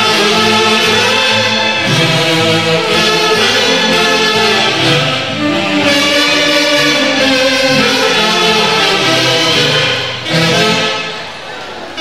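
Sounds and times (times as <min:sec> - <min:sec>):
saxophone melody in harmony: 0:00.0 - 0:12.0
violins: 0:00.0 - 0:12.0.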